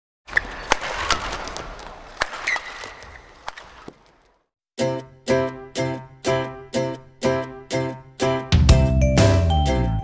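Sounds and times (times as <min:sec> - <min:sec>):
racket hitting shuttlecock: 0:00.3 - 0:04.0
shoe squeaks on court: 0:00.3 - 0:04.1.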